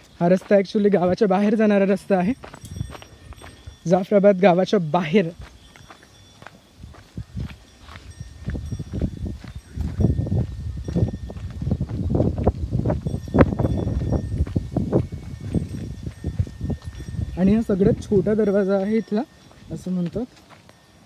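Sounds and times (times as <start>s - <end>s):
footsteps on dirt path: 0.0s - 21.0s.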